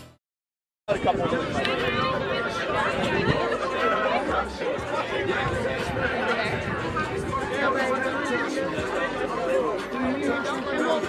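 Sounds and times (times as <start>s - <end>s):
crowd chatter: 0.9s - 11.0s.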